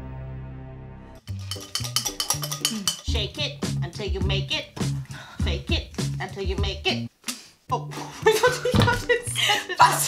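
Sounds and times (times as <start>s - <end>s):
upbeat background music: 0.0s - 7.1s, 7.7s - 10.0s.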